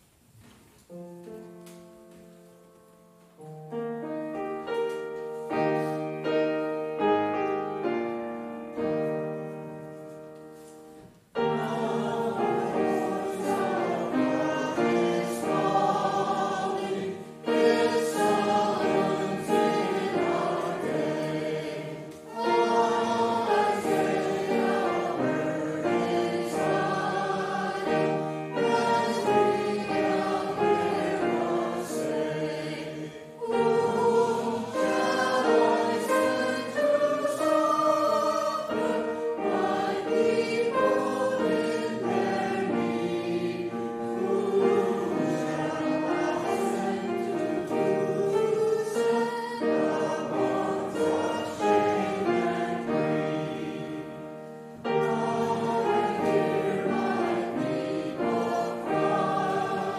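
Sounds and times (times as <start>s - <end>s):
choir singing a hymn: 3.4s - 59.9s.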